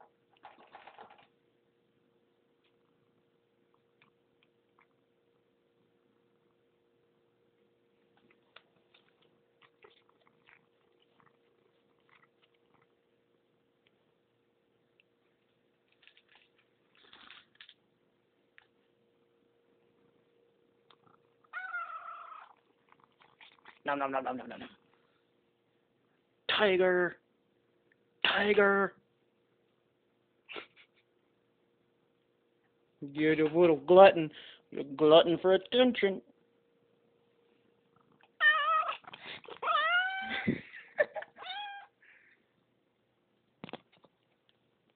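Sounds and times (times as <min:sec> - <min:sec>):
clicks and rustles: 0:00.3 - 0:01.4, 0:15.4 - 0:17.8
cat mewling: 0:21.5 - 0:22.6, 0:38.4 - 0:40.5, 0:41.3 - 0:42.0.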